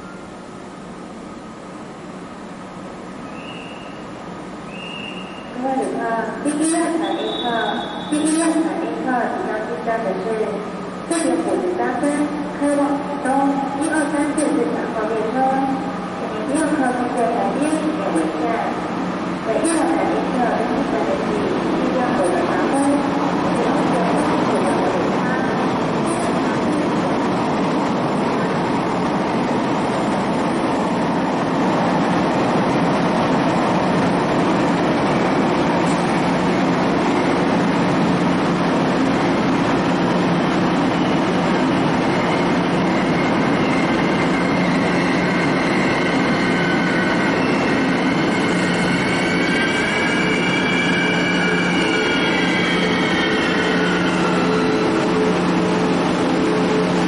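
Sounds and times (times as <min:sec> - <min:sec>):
locomotive engine drone: 0:05.8 - 0:57.0
high metallic squeals: 0:42.1 - 0:55.8.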